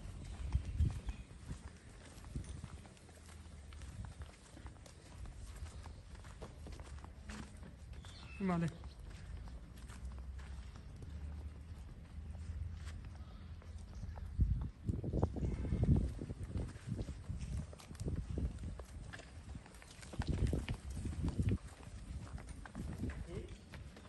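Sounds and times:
footsteps scuffing on dirt: 0:00.0 - 0:13.2
cow hooves on sandy dirt: 0:00.0 - 0:24.0.

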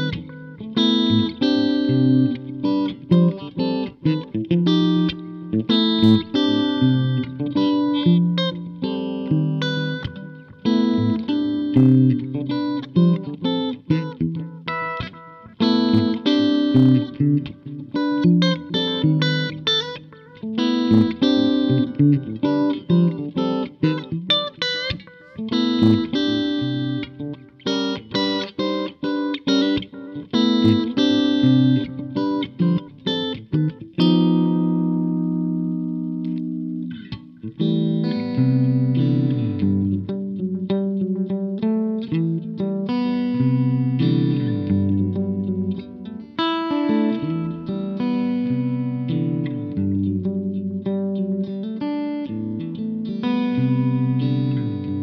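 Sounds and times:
electric guitar jazz-fusion line: 0:00.0 - 0:55.0.

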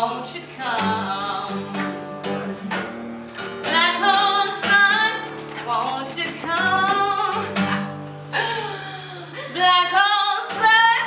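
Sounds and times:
woman singing: 0:00.0 - 0:02.0, 0:03.6 - 0:11.0
acoustic guitar chord: 0:00.0 - 0:11.0.

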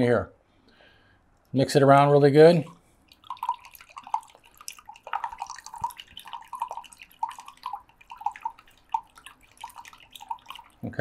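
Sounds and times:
water stirred in a cup: 0:02.6 - 0:11.0.

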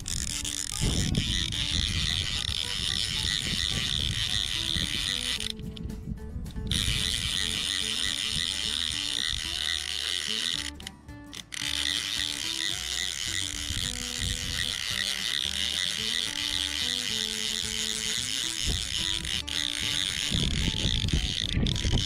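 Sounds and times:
background music: 0:00.0 - 0:22.0
fly reel clicking: 0:00.0 - 0:22.0.

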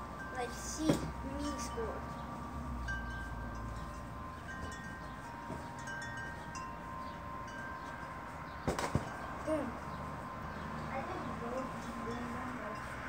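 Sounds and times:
wind chimes ringing softly: 0:00.0 - 0:13.0.

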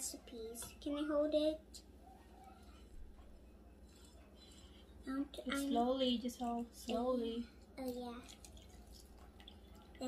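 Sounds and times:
milk trickling into metal bowl: 0:08.2 - 0:10.0.

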